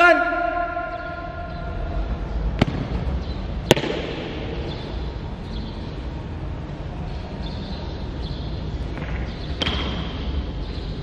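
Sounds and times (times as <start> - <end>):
shout echoing in hall: 0.0 - 2.3.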